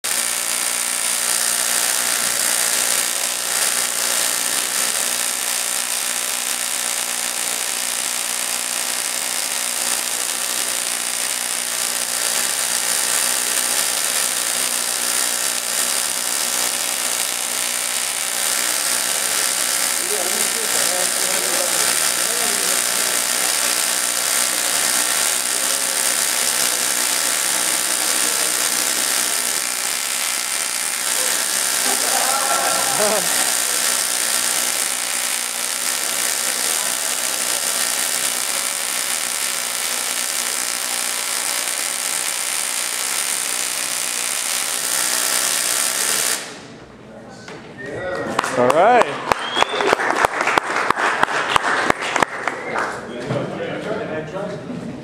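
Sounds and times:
tesla coil electric buzz: 0.0 - 47.0.

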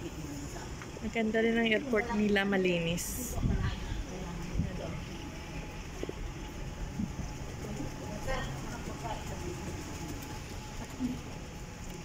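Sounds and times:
low rumble of terminal background: 0.0 - 12.0.

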